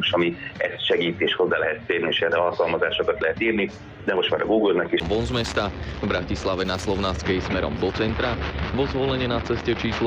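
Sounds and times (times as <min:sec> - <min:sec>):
radio broadcast speech: 0:00.0 - 0:10.0
heavy low rumble: 0:05.0 - 0:10.0.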